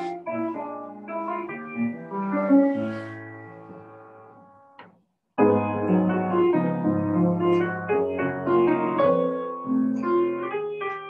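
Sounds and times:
jazz piano chords: 0:00.0 - 0:11.0.

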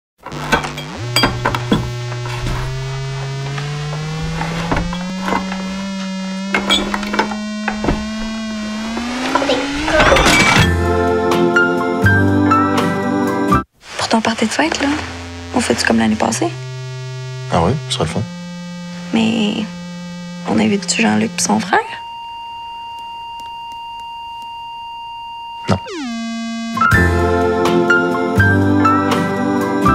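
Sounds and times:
high-pitched electronic tone: 0:00.4 - 0:10.8, 0:14.9 - 0:23.5, 0:24.2 - 0:27.5
droning note rising in pitch: 0:00.7 - 0:11.0, 0:15.2 - 0:22.3, 0:25.6 - 0:27.6.

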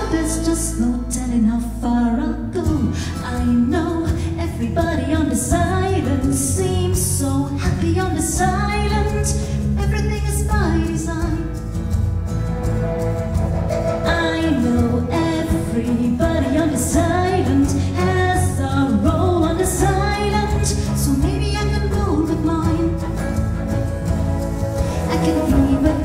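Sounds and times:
woman singing into microphone: 0:00.0 - 0:11.6, 0:14.0 - 0:23.4, 0:24.8 - 0:26.0
instrumental accompaniment: 0:00.0 - 0:26.0.

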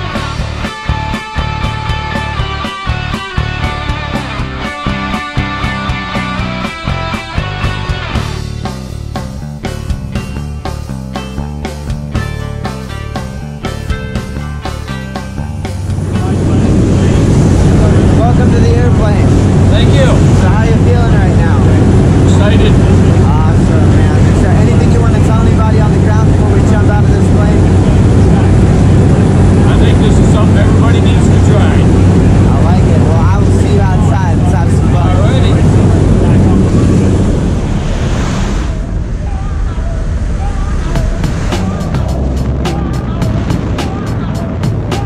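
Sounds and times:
plane engine and propeller drone: 0:14.4 - 0:45.0
people talking: 0:16.1 - 0:28.9, 0:29.5 - 0:37.5.

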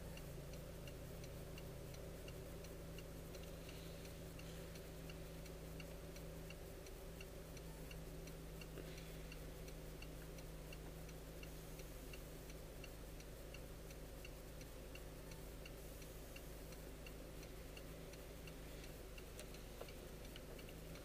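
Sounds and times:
car engine idling: 0:00.0 - 0:21.0
turn signal ticking: 0:00.0 - 0:21.0.

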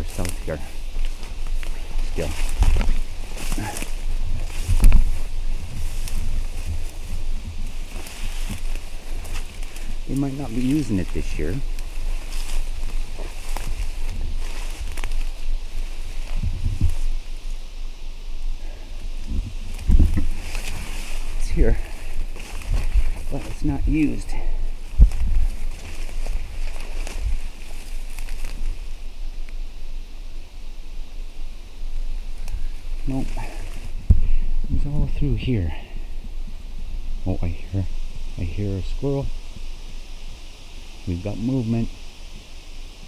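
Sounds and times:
footsteps through undergrowth: 0:00.0 - 0:29.9, 0:31.3 - 0:42.4.

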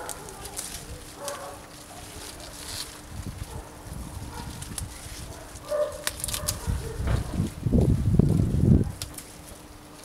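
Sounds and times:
stalks snapping: 0:00.0 - 0:03.0, 0:04.5 - 0:07.3, 0:08.3 - 0:10.0
leaves rustling: 0:00.0 - 0:10.0.

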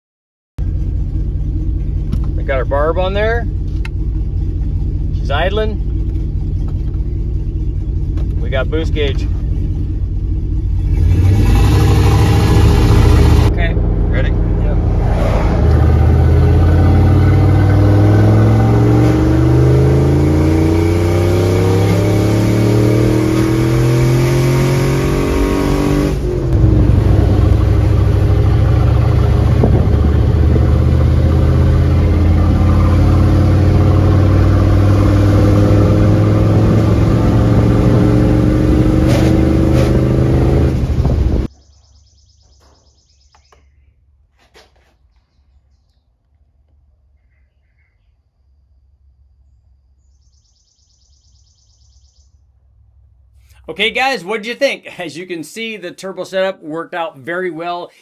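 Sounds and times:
engine accelerating hard: 0:00.6 - 0:41.5.

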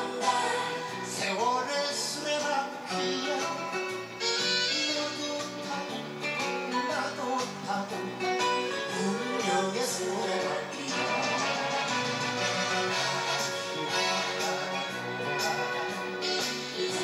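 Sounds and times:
man singing into a microphone: 0:00.0 - 0:12.0, 0:12.9 - 0:17.0
instrumental accompaniment: 0:02.9 - 0:17.0.

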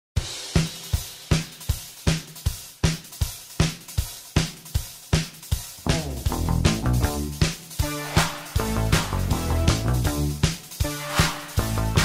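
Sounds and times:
drum kit rock beat: 0:00.2 - 0:12.0.

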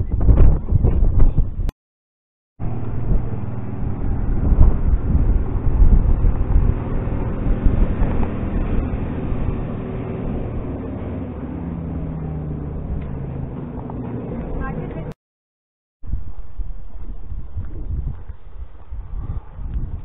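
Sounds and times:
wind buffeting microphone: 0:00.0 - 0:01.7, 0:02.6 - 0:15.2, 0:16.0 - 0:20.0
steady low hum: 0:02.6 - 0:15.2.

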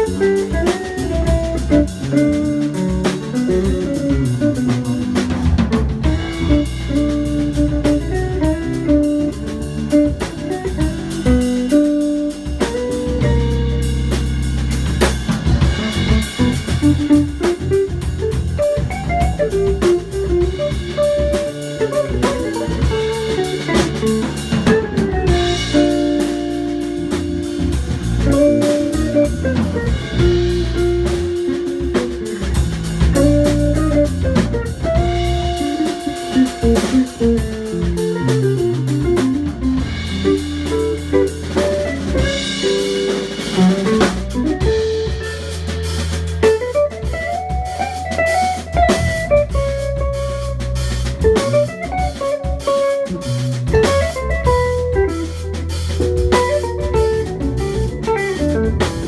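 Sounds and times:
drum kit with cymbals: 0:00.0 - 0:59.0
electric bass: 0:00.0 - 0:59.0
electric guitar melody: 0:00.0 - 0:59.0.

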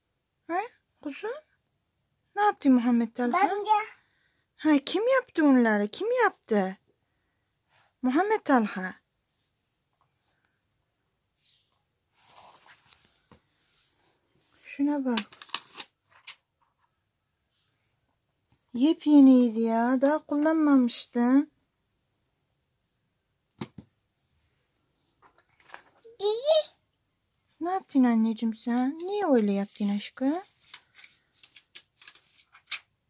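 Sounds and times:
woman speaking: 0:00.5 - 0:01.5, 0:02.4 - 0:03.5, 0:04.6 - 0:06.8, 0:08.0 - 0:09.0, 0:14.6 - 0:15.3, 0:18.7 - 0:21.5, 0:27.6 - 0:30.5.

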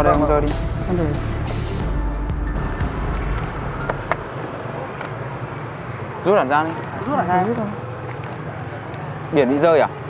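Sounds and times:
background music: 0:00.0 - 0:04.2
passing vehicle rumble: 0:00.0 - 0:10.0.

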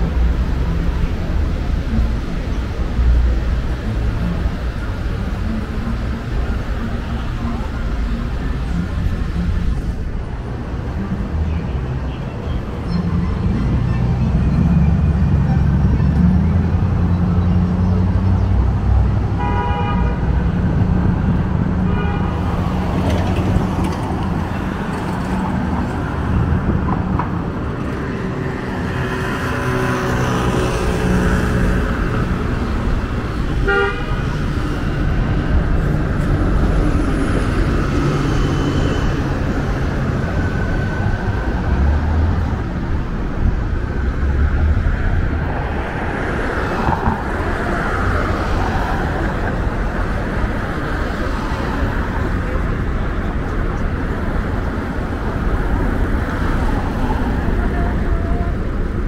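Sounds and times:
passing cars rumble: 0:00.0 - 0:59.0
car horn toots: 0:19.4 - 0:20.2, 0:33.6 - 0:34.2.

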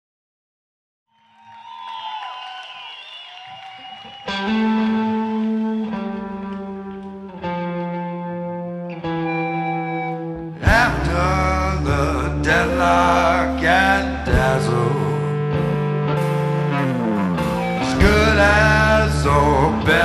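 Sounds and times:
electric guitar gliding notes: 0:03.5 - 0:20.0
loud sustained band chords: 0:09.5 - 0:20.0.

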